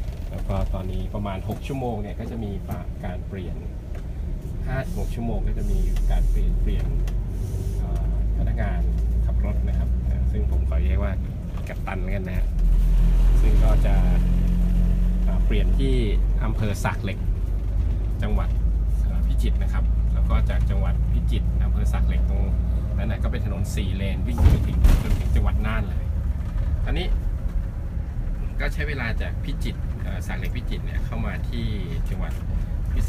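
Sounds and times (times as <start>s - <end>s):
bus engine low drone: 0.0s - 33.0s
road noise: 0.0s - 33.0s.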